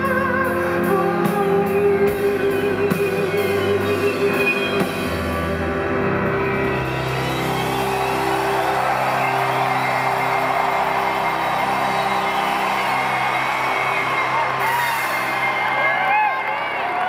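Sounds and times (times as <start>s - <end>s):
crowd cheering and whooping: 4.8s - 17.0s.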